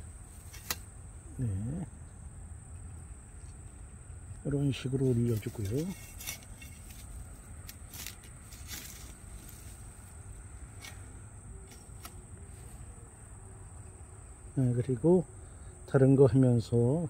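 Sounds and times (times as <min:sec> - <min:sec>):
crickets chirping: 0:00.0 - 0:17.0
hand rustling soil and twigs: 0:04.4 - 0:13.4.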